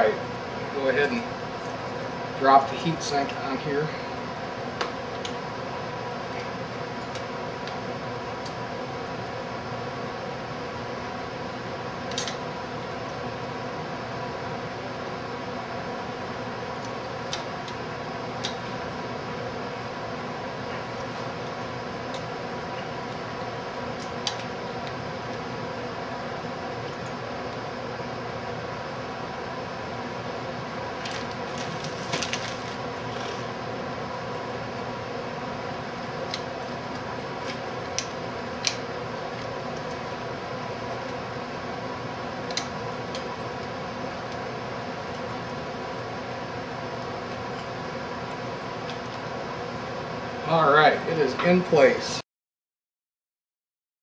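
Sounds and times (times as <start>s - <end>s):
background hum and hiss: 0.0s - 52.2s.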